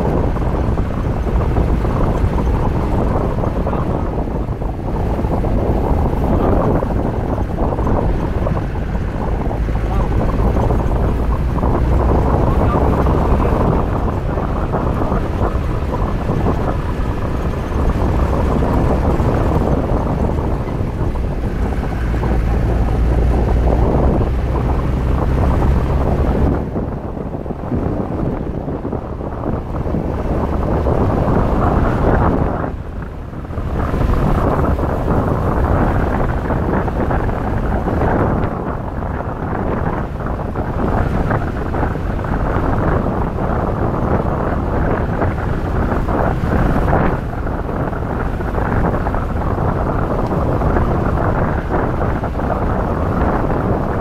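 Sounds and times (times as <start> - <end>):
vehicle engine rumble: 0.0 - 54.0
wind buffeting microphone: 0.0 - 54.0.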